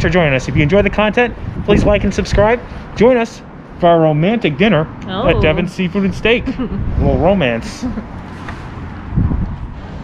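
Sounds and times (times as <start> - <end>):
wind buffeting microphone: 0.0 - 3.0, 5.1 - 10.0.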